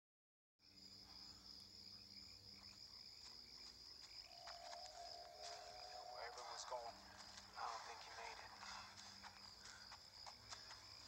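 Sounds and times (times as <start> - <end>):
crickets trilling: 0.6 - 11.0
low steady tone: 4.3 - 7.3.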